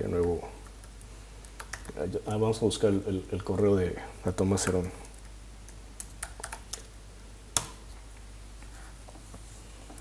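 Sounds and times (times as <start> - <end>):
computer keyboard typing: 0.1 - 2.0, 4.4 - 6.9.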